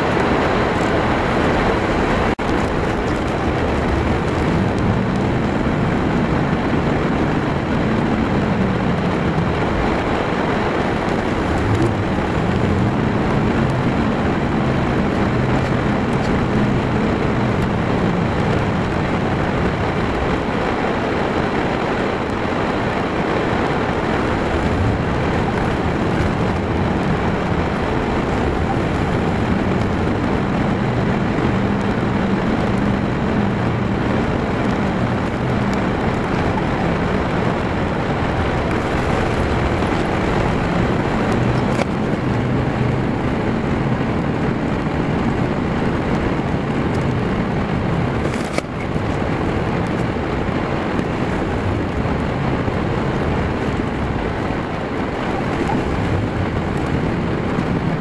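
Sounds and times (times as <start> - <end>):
car engine running: 0.0 - 58.0
tyre and road noise: 0.0 - 58.0.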